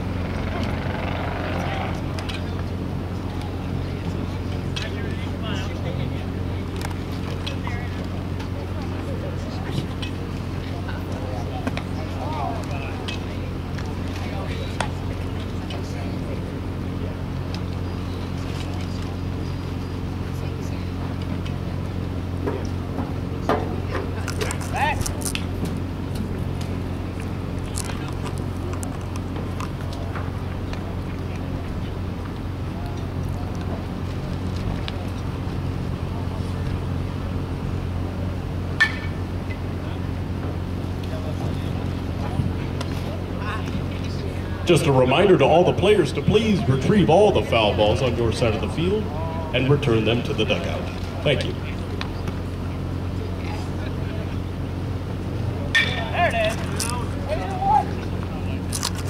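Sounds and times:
faint distant voices: 0.0 - 59.0
steady low hum: 0.0 - 59.0.

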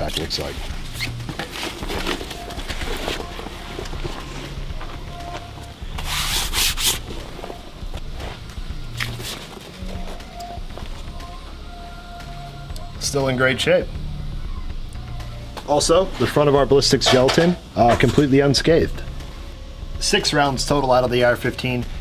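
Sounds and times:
faint background music: 0.0 - 22.0
backpack fabric rustling: 0.2 - 10.2
backpack scrape: 0.3 - 4.6, 5.2 - 9.8.

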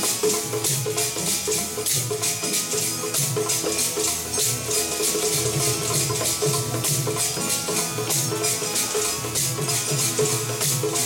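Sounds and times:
rattling percussion beat: 0.0 - 11.0
tabla: 0.0 - 11.0.

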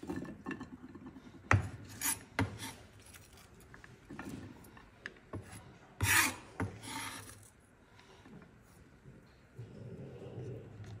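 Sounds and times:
knife scraping cutting board: 5.4 - 7.5.

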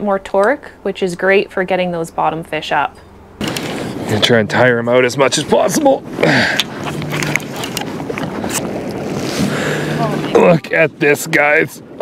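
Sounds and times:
water around a kayak: 3.4 - 12.0
wind on microphone: 5.2 - 12.0.

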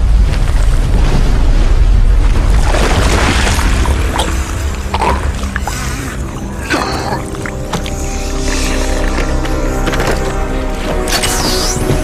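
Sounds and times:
dramatic orchestral chords: 3.3 - 12.0.

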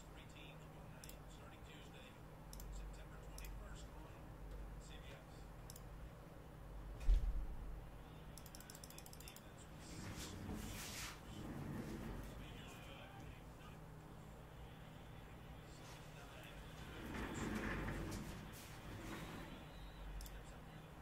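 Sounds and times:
low thump: 7.0 - 7.5.

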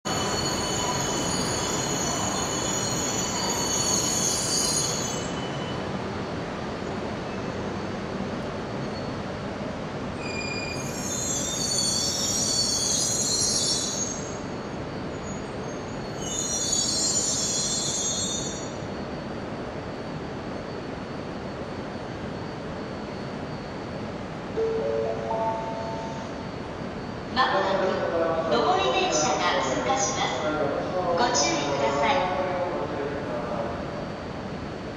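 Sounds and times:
train brakes squealing: 0.1 - 5.9, 8.8 - 9.3, 10.2 - 27.3.

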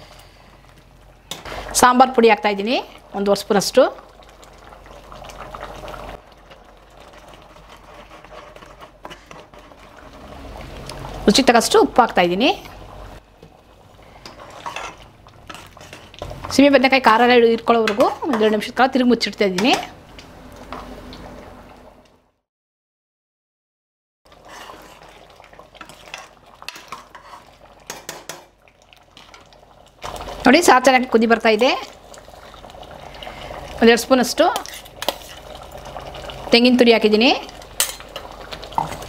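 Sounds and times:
pot of food bubbling: 0.0 - 22.0, 24.3 - 39.0.

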